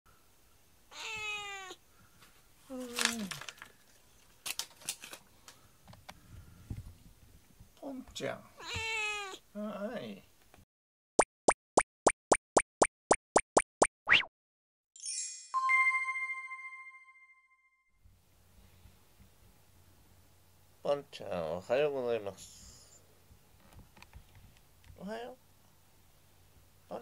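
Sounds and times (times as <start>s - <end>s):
cat meowing: 0.9s - 1.8s, 8.6s - 9.4s
cartoon upward sweeping pops: 11.2s - 14.3s.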